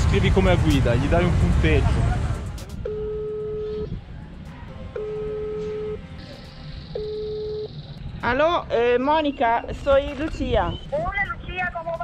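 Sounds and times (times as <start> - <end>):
telephone ringback tone: 2.9 - 3.9, 5.0 - 6.0, 6.9 - 7.8.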